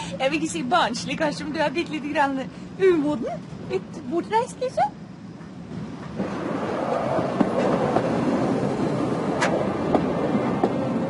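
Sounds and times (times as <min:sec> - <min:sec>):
rail vehicle running noise: 0:00.0 - 0:11.0.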